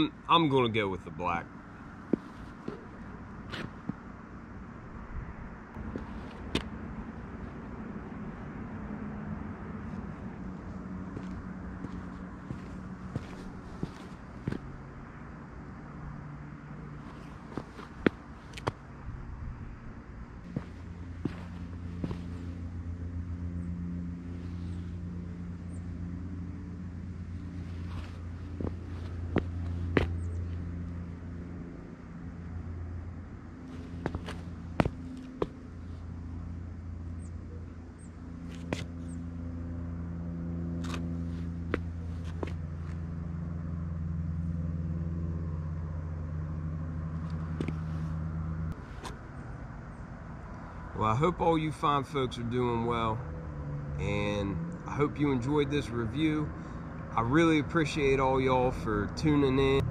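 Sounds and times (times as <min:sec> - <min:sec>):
low motor hum: 0:01.5 - 0:51.0
sneaker footsteps on concrete: 0:01.9 - 0:04.1, 0:05.8 - 0:06.8, 0:09.9 - 0:15.0, 0:17.0 - 0:18.8, 0:20.4 - 0:22.8, 0:27.4 - 0:31.0, 0:33.6 - 0:35.9, 0:38.4 - 0:39.2, 0:40.8 - 0:43.1, 0:47.3 - 0:49.2.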